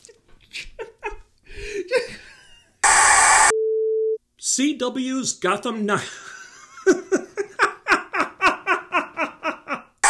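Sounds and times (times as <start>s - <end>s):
person laughing: 0.0s - 2.8s, 6.0s - 10.0s
tv static burst: 2.8s - 3.5s.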